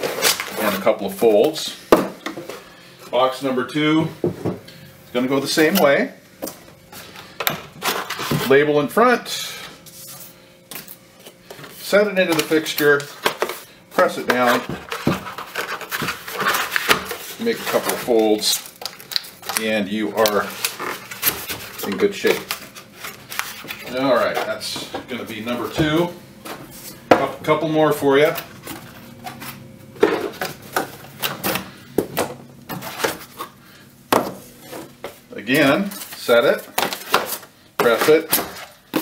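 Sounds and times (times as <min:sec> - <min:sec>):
cardboard scraping and rustling: 0:12.3 - 0:19.0, 0:19.6 - 0:27.0, 0:32.7 - 0:33.5.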